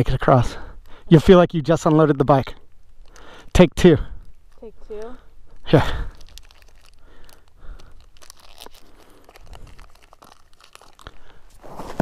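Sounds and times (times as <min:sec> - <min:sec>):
plastic wrapper tearing and crinkling: 0:04.5 - 0:12.0.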